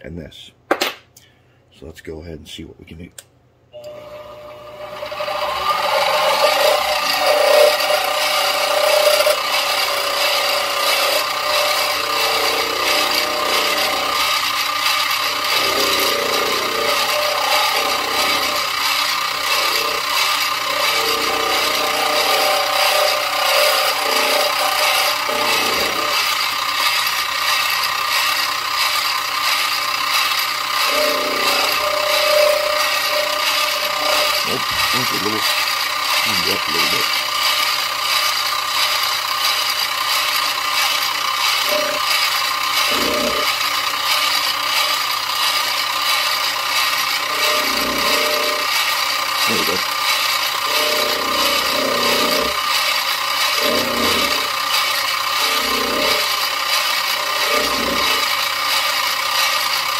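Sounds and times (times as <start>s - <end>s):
end mill cutting plastic: 3.8s - 59.9s
milling machine spindle whine: 3.8s - 59.9s.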